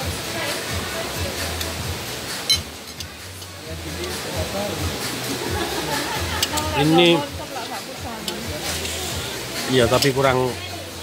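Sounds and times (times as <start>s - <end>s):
faint music: 0.0s - 11.0s
indistinct background voices: 0.2s - 11.0s.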